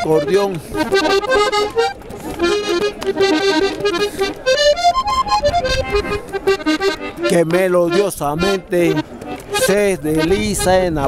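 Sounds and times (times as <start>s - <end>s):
accordion melody: 0.0s - 11.0s.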